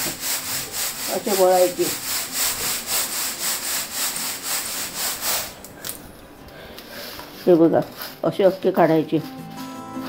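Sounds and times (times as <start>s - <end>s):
grains rasping in bamboo tray: 0.0s - 5.6s.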